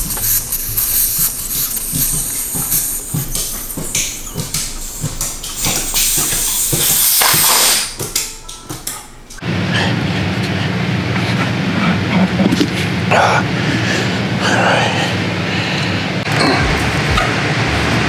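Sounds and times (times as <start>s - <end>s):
air hissing out of tire valve: 0.0s - 8.0s
background music with soft beat: 16.3s - 18.0s.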